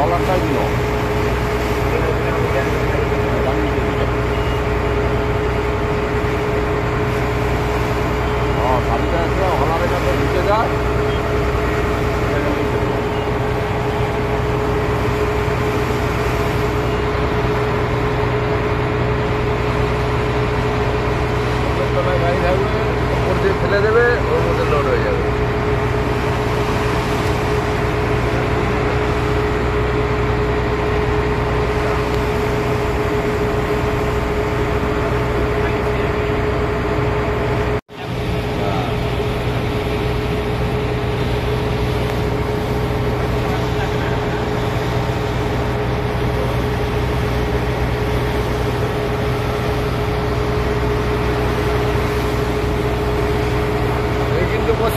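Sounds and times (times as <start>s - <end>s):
boat engine droning: 0.0s - 54.9s.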